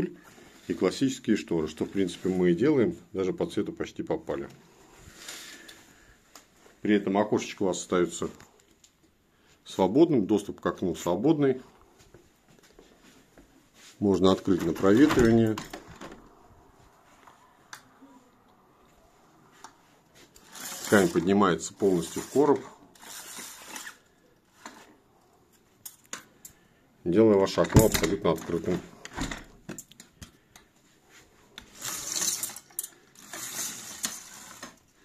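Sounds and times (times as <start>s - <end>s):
roller blind click: 20.4s - 21.4s, 22.0s - 24.8s, 31.6s - 34.8s
roller blind chain rattling: 31.8s - 34.6s.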